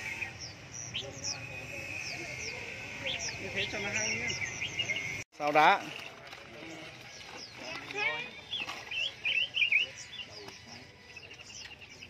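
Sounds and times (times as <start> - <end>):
caged songbirds chirping: 0.0 - 12.0.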